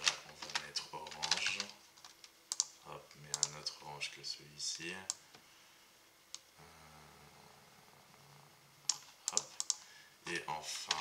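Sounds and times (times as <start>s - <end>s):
mouse and keyboard clicks: 1.2s - 2.7s.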